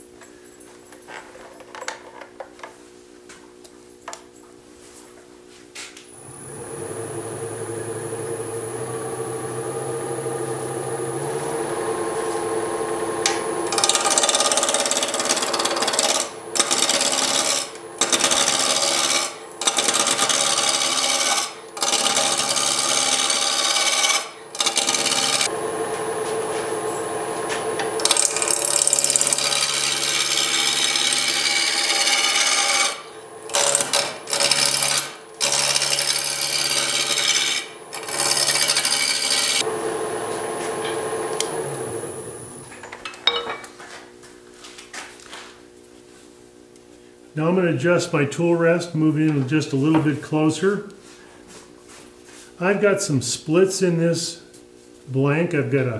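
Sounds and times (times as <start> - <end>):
wood lathe humming: 6.1 - 42.8
gouge rasping on wood: 13.7 - 25.4, 28.1 - 39.6.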